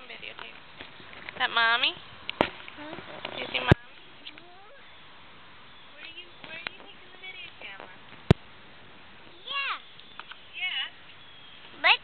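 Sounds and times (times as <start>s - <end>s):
small child voice sounds: 9.3s - 9.9s.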